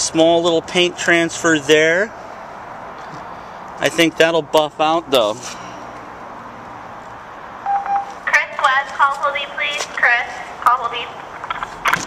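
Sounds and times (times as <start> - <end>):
short electronic beep: 7.6 - 8.2.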